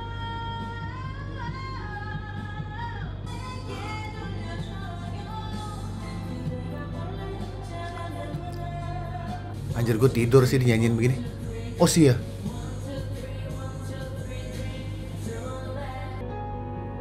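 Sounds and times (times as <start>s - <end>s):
woman singing: 0.0s - 10.0s, 10.6s - 16.3s
karaoke backing track: 0.0s - 17.0s.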